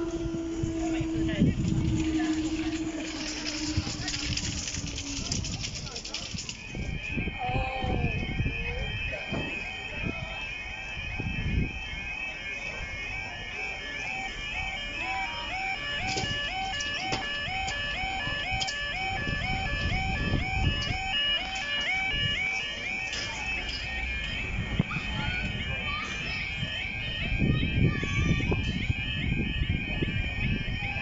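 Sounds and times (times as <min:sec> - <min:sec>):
level crossing alarm warbling: 0:00.0 - 0:31.0.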